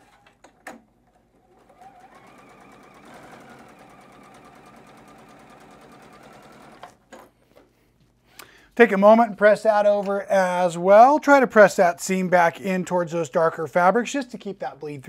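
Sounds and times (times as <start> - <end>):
electric sewing machine stitching: 1.4 - 7.0.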